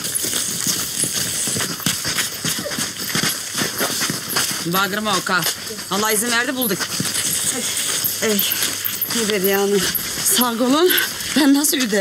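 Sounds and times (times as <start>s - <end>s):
footsteps running on dirt path: 0.0s - 12.0s.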